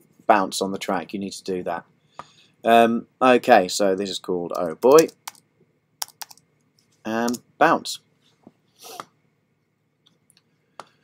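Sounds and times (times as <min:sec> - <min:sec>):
typing on computer keyboard: 0:04.6 - 0:05.4, 0:06.0 - 0:06.4.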